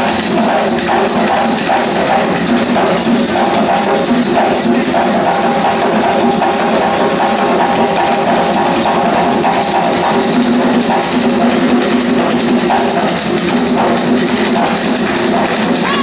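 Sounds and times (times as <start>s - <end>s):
hand drums ensemble drumming: 0.0s - 16.0s.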